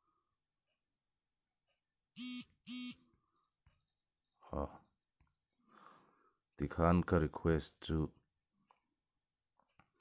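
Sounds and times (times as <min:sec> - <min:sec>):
phone vibration buzzes: 0:02.2 - 0:03.0.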